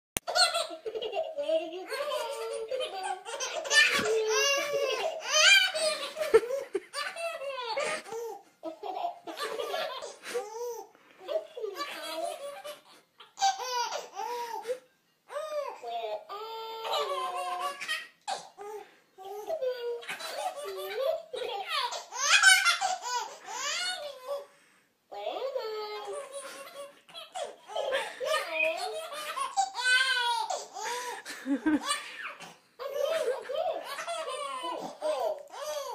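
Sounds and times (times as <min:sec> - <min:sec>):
baby laughing: 0:00.3 - 0:24.5, 0:25.2 - 0:35.9.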